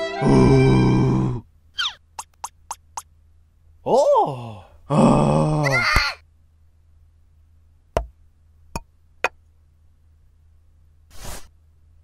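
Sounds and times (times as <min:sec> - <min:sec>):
cartoon voice groaning: 0:00.2 - 0:01.4, 0:03.9 - 0:06.2
cartoon voice exclaiming: 0:05.5 - 0:06.2.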